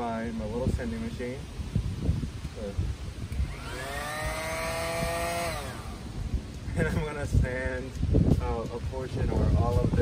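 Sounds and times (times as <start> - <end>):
orbital sander motor whine: 3.2 - 6.5.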